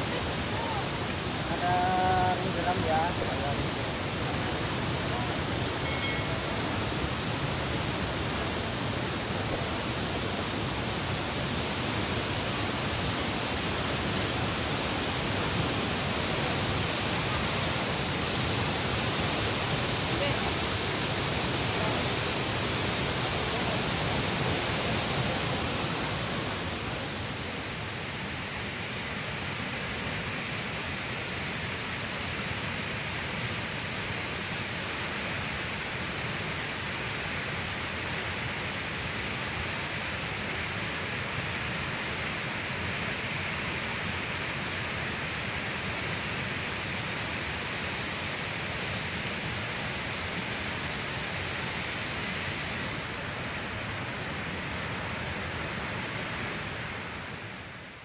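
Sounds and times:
waterfall rushing: 0.0s - 57.9s.

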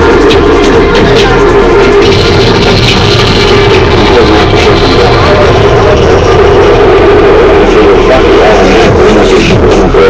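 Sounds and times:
bus running: 0.0s - 10.0s
electronic music over bus speakers: 0.0s - 10.0s.

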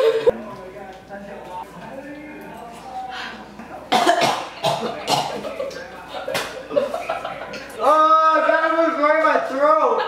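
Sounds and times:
person coughing harshly: 3.9s - 5.4s.

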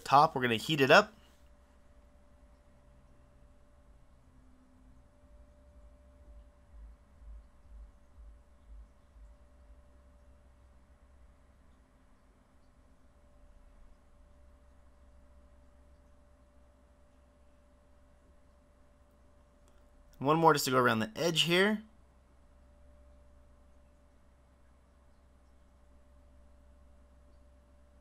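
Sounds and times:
thin steady hum: 0.0s - 28.0s
soft low thumps: 5.8s - 9.8s.

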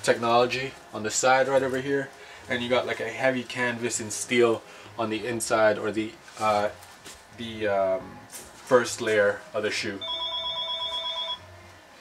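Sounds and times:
electronic telephone ringing: 10.0s - 11.5s.

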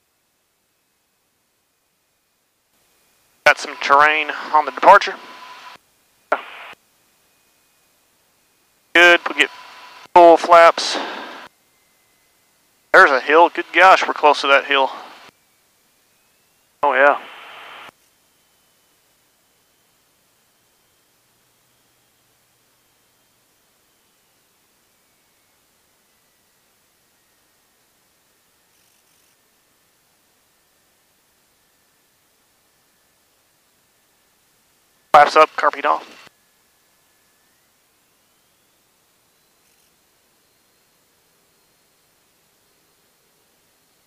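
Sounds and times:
faint hiss: 2.6s - 44.0s.

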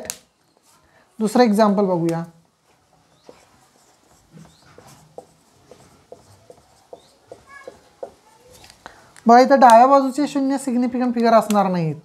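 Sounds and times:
marker tapping on whiteboard: 2.9s - 8.3s
marker tip squeaking: 3.0s - 8.7s.

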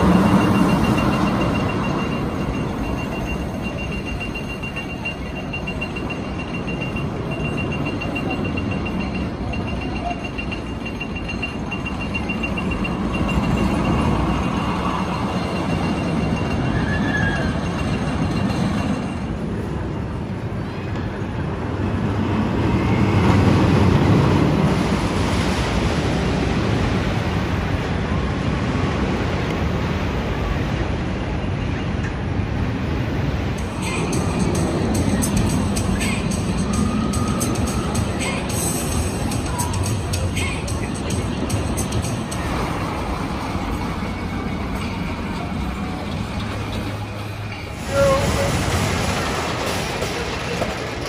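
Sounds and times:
roller coaster train rumbling: 0.0s - 51.0s.

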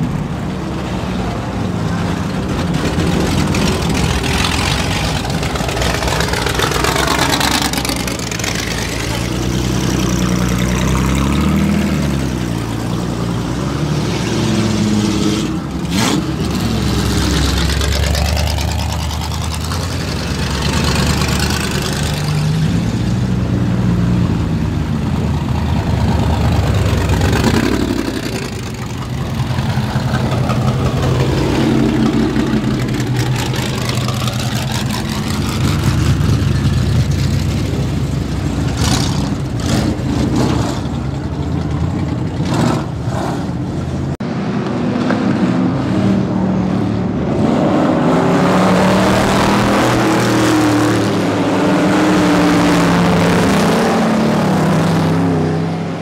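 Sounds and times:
car engines idling and revving: 0.0s - 56.0s.

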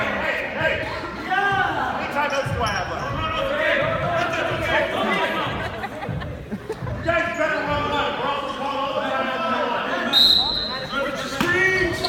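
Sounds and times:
voices in hall: 0.0s - 12.0s.

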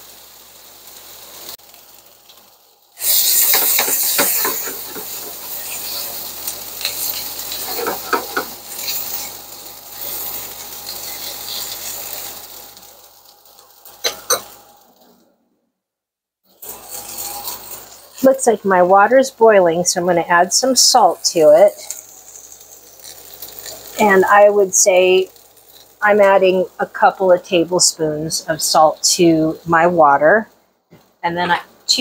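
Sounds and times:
onions sizzling in a frying pan: 0.0s - 15.0s, 16.5s - 30.5s, 31.2s - 32.0s
tongs clacking against pan: 3.4s - 6.1s, 6.8s - 9.3s, 14.0s - 14.6s.

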